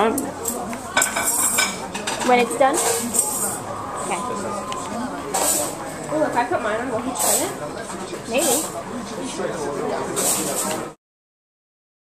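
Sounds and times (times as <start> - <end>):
faint voices: 0.0 - 11.0.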